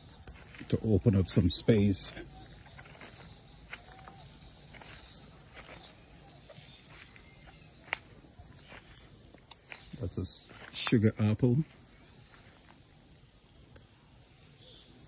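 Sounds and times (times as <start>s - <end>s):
insects trilling: 0.0s - 15.0s.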